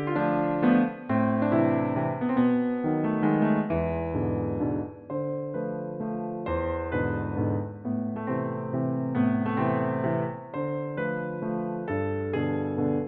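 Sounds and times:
piano music: 0.0 - 13.0.

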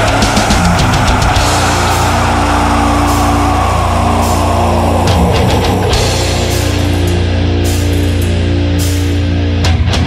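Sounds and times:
cymbal crashes: 0.0 - 9.4
death metal music: 0.0 - 10.0
distorted guitars: 0.0 - 10.0.

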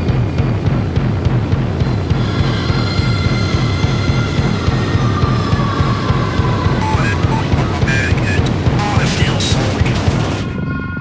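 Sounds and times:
electronic soundtrack music: 0.0 - 10.8.

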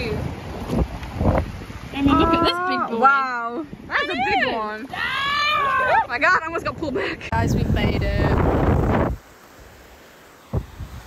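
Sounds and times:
surf washing up a beach: 0.0 - 11.0.

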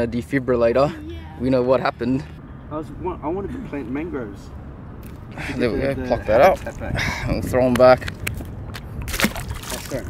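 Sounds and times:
splash in water: 9.1 - 10.0.

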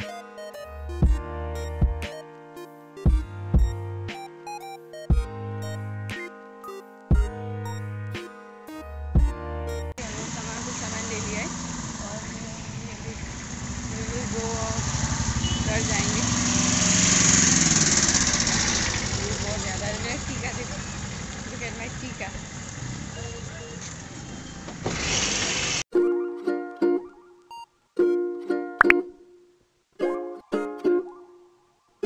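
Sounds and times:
vehicle engine running: 10.0 - 24.3
street noise: 10.0 - 25.9
wind: 10.0 - 26.2.

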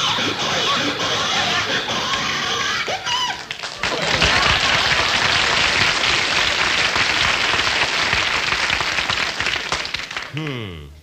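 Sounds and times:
audience applauding: 3.2 - 10.6.

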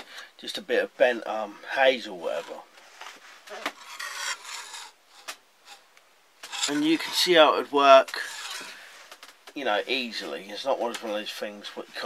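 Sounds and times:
trap scraping across wooden table: 2.2 - 2.6, 3.2 - 5.8, 6.4 - 9.3.

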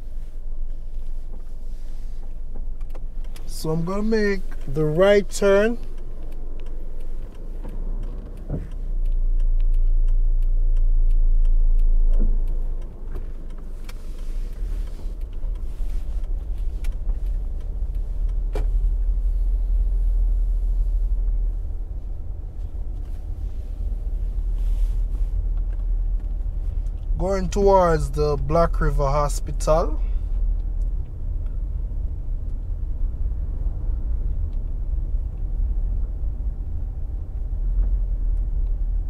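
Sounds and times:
vehicle rumble driving on road: 0.0 - 39.0
light clicks: 0.4 - 19.2.

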